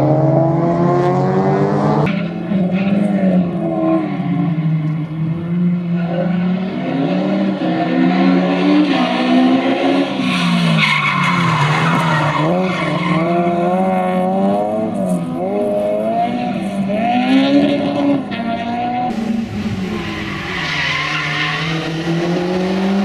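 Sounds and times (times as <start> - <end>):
race car engine revving: 11.4 - 23.0.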